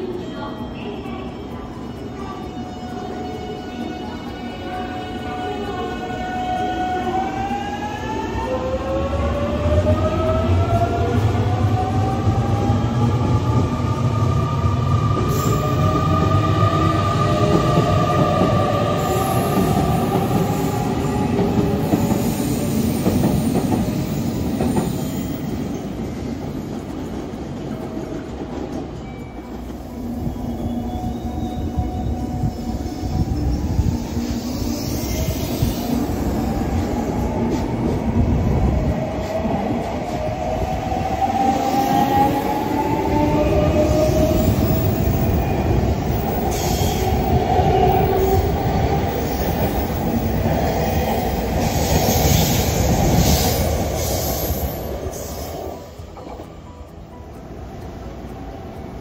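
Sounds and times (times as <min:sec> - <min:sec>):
rising train tones: 0:00.0 - 0:59.0
train wheels rumbling on rails: 0:00.0 - 0:59.0.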